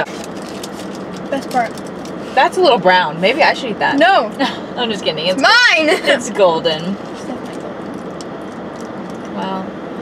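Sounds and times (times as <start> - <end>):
car cabin air conditioning hum: 0.0 - 10.0.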